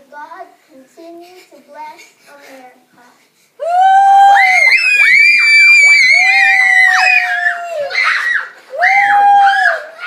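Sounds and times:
girls screaming with excitement: 3.6s - 10.0s.

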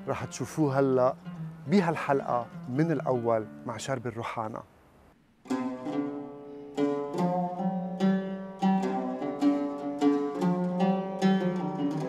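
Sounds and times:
oud plucked melody: 0.0s - 4.4s, 5.2s - 12.0s.

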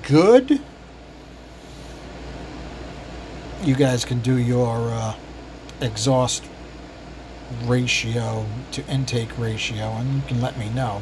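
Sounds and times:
steady background hum with hiss: 0.0s - 11.0s.

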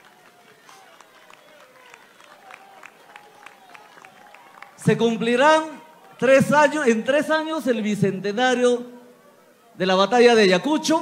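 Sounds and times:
scattered hand claps: 0.0s - 5.0s.

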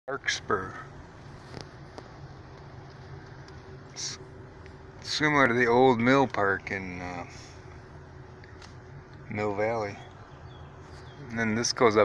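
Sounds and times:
car engine hum: 0.1s - 12.0s
road noise inside car: 0.1s - 12.0s.

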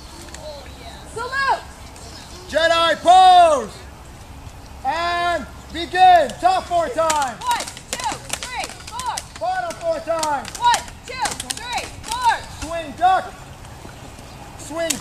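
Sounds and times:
plastic blades clacking: 7.0s - 12.7s.

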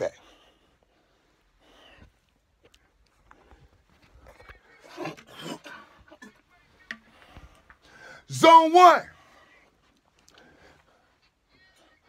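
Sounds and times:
person's voice: 8.3s - 9.1s.

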